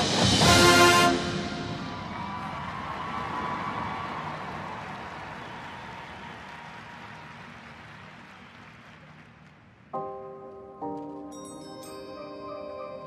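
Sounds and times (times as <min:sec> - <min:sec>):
marching band hit: 0:00.0 - 0:02.2
crowd noise: 0:00.9 - 0:09.8.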